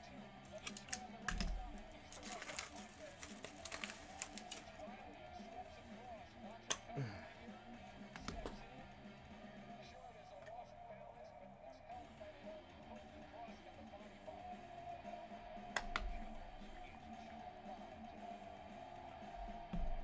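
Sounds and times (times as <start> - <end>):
background music: 0.0 - 20.0
faint background speech: 0.0 - 20.0.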